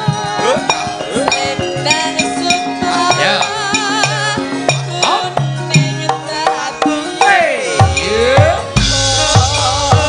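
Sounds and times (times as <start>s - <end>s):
low drum beats: 5.8s - 10.0s.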